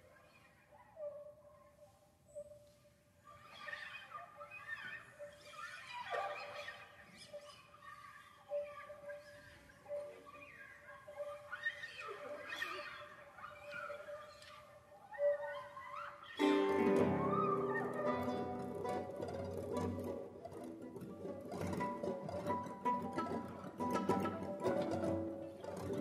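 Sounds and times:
classical guitar ensemble: 0:16.4 - 0:26.0
setar sliding pitches: 0:16.4 - 0:26.0.

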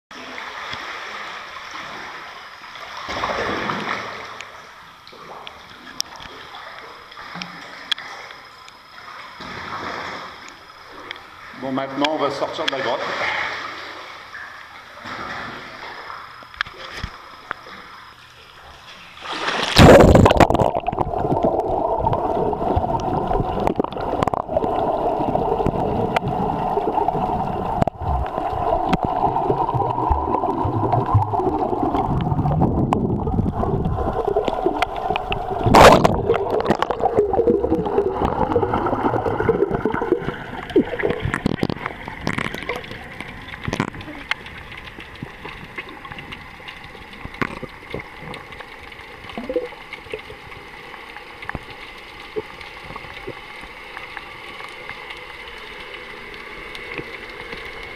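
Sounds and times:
underwater gurgling and rushing: 0:00.1 - 0:57.9
splash into water: 0:02.9 - 0:04.4, 0:19.2 - 0:22.1, 0:35.6 - 0:42.9.

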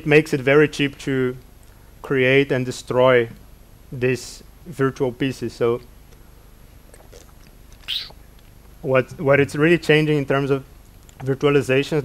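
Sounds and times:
man sipping from a bottle: 0:06.9 - 0:08.2
man speaking: 0:11.2 - 0:12.0.

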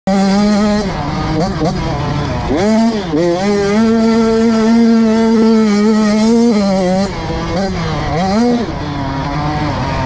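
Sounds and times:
motocross engine at high revs: 0:00.1 - 0:10.0.

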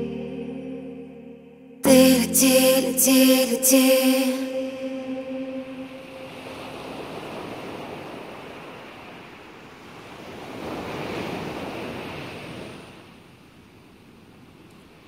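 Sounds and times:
song held notes: 0:00.0 - 0:07.0
sea surf washing in: 0:02.0 - 0:13.1
wind: 0:03.7 - 0:15.0.

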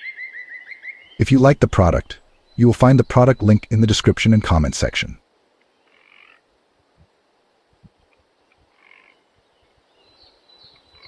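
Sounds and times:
short faint animal calls: 0:05.7 - 0:06.5, 0:08.1 - 0:09.4.

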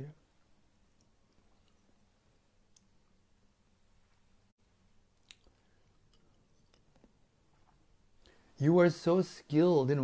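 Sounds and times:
faint small clicks: 0:02.7 - 0:03.0, 0:05.2 - 0:07.2.

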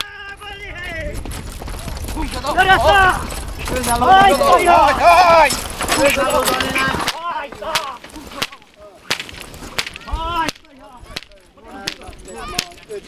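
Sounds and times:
men shouting at horses: 0:02.2 - 0:08.0
sharp cracks: 0:05.5 - 0:13.0.

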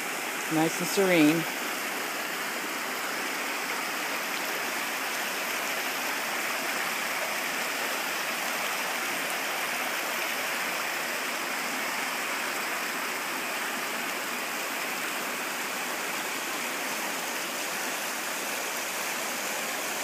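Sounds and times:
stream rushing over stones: 0:00.0 - 0:20.0.

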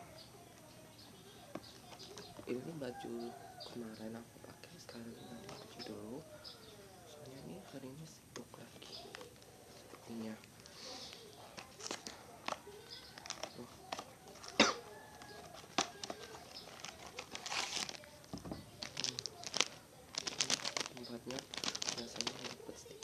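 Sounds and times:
plastic wrapper crinkling: 0:08.6 - 0:23.0
sharp crack of packaging: 0:11.0 - 0:23.0.

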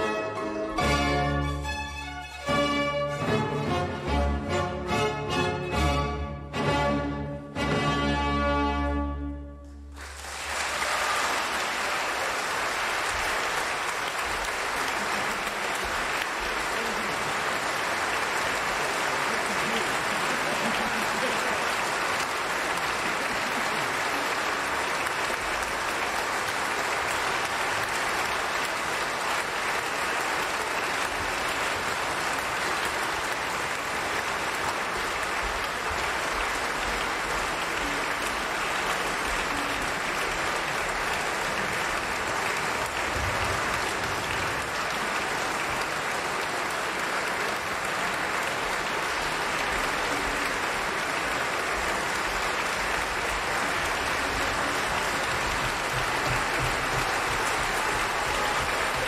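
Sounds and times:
audience applauding: 0:09.7 - 0:59.0.

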